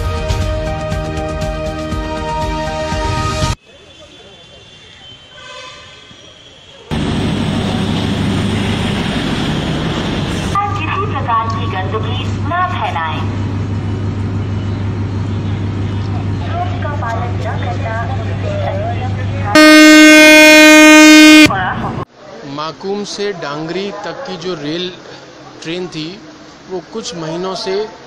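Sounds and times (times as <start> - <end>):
train horn blast: 5.4 - 6.1, 19.5 - 21.6
train diesel engine humming: 5.7 - 22.1
voices: 10.6 - 13.4, 16.0 - 22.5.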